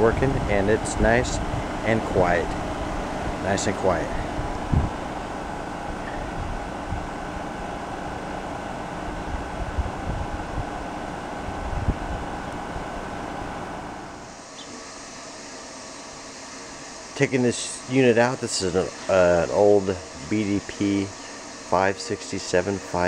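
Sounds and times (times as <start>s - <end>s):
heat pump fan and compressor: 0.0s - 23.0s.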